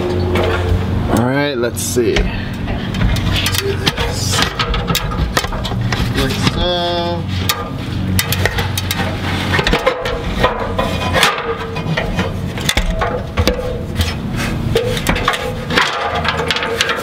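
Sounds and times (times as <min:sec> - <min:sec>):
steady hum: 0:00.0 - 0:17.0
handling noise: 0:02.1 - 0:17.0.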